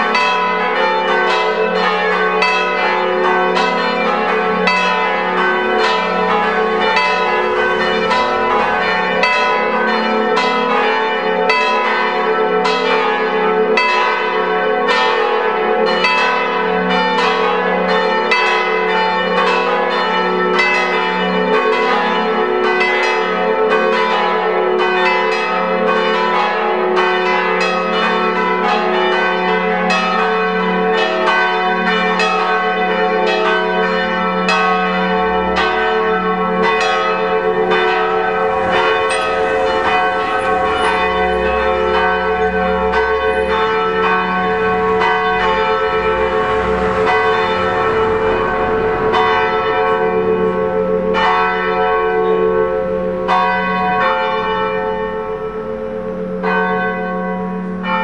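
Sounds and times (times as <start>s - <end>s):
church bells ringing: 0.0s - 58.0s.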